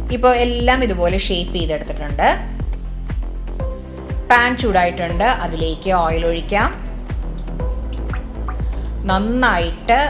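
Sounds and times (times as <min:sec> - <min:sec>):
background music: 0:00.0 - 0:10.0
oil splashing plops: 0:06.6 - 0:09.1
oil pouring into a pan: 0:06.9 - 0:09.0.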